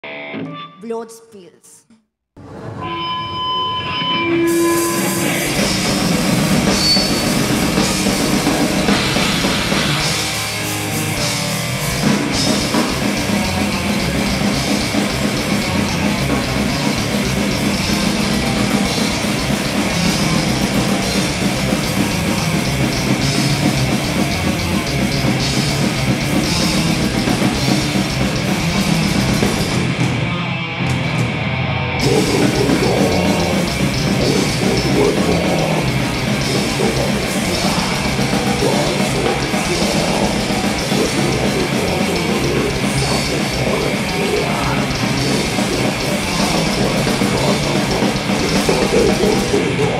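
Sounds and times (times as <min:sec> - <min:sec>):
death metal band playing: 0:03.8 - 0:49.9.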